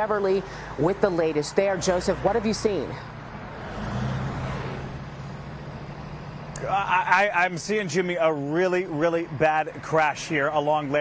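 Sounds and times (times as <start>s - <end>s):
passing vehicle engine and tyres: 0.0s - 11.0s.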